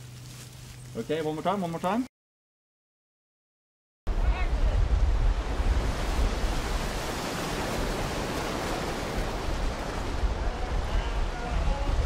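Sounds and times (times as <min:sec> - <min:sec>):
surf washing on a beach: 0:04.1 - 0:12.0
wind buffeting microphone: 0:04.1 - 0:12.0.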